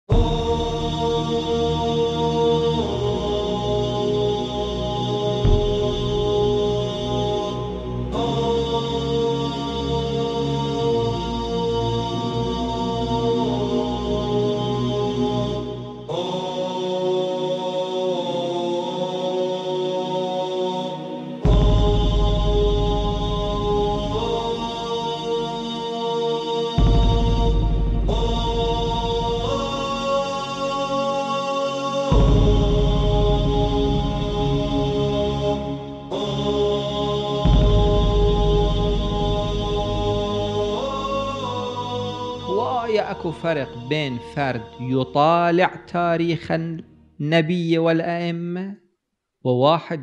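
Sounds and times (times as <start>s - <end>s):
heavy bass: 0.0s - 16.5s, 21.5s - 25.9s, 26.8s - 31.3s, 32.1s - 44.8s
chanted or hummed voices: 0.0s - 48.8s.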